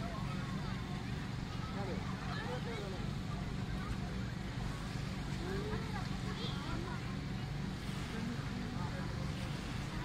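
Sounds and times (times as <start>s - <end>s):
low seaside rumble: 0.0s - 10.0s.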